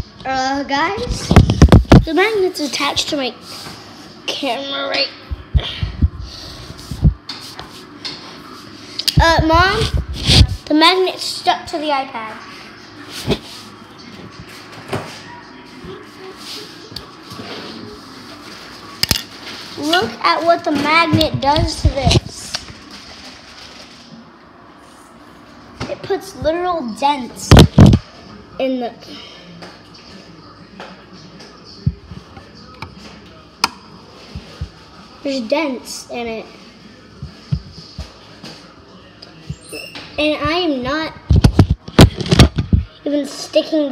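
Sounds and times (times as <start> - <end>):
soft low thumps: 5.3 - 6.3, 6.9 - 7.2.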